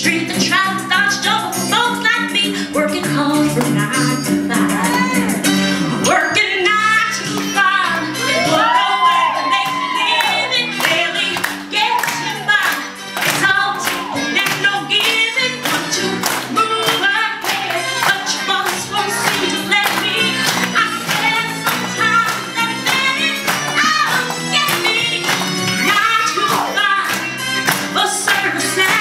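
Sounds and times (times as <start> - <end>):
backing track with steady beat: 0.0 - 29.0
woman singing into a microphone: 0.0 - 29.0.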